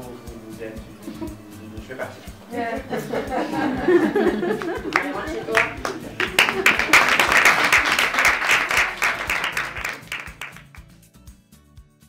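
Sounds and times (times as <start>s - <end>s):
music playing: 0.0s - 12.0s
audience applauding: 2.9s - 10.9s.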